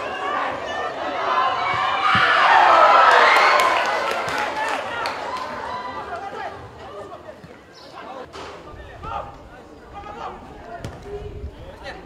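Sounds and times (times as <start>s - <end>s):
football being kicked: 10.8s - 11.1s.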